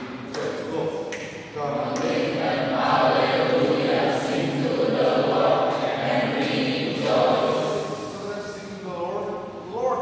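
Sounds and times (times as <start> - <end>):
mixed choir singing: 1.6 - 8.2.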